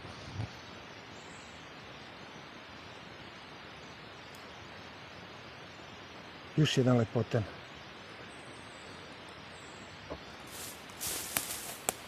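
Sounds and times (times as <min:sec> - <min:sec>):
faint forest ambience hiss: 0:00.0 - 0:12.0
footfalls on dry leaves: 0:10.4 - 0:12.0.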